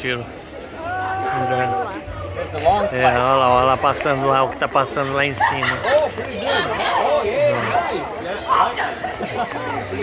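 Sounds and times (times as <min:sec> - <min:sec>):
chatter of people talking: 0:00.0 - 0:10.0.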